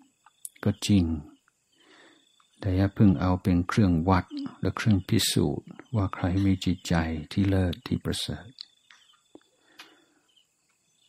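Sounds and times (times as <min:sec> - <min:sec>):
man speaking: 0:00.5 - 0:01.4, 0:02.6 - 0:08.6.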